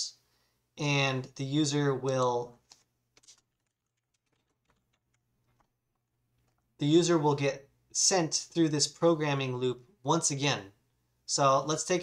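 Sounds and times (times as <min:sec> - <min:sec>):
soft keyboard typing: 0:02.7 - 0:06.7.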